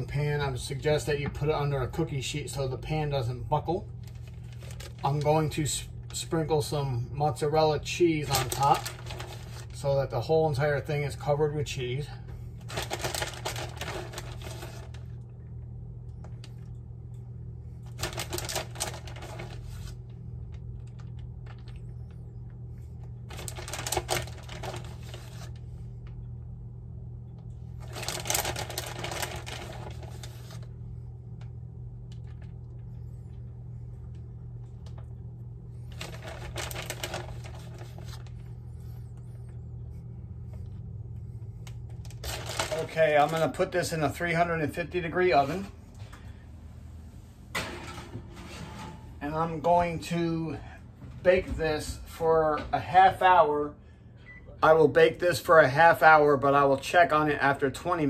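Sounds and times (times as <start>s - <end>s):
steady low hum: 0.0s - 58.0s
plastic bag crinkling: 3.9s - 6.2s, 8.2s - 9.9s, 12.6s - 15.2s, 17.8s - 21.8s, 23.3s - 25.6s, 27.8s - 30.7s, 35.9s - 38.5s, 41.6s - 43.8s.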